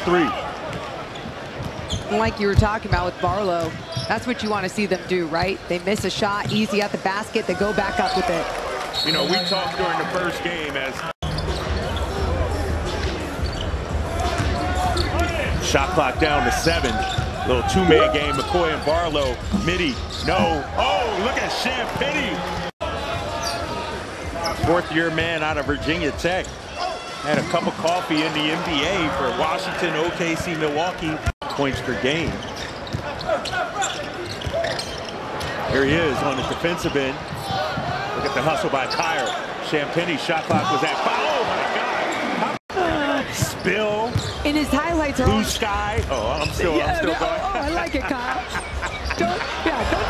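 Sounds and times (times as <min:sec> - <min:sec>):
crowd murmur: 0:46.6 - 0:50.0.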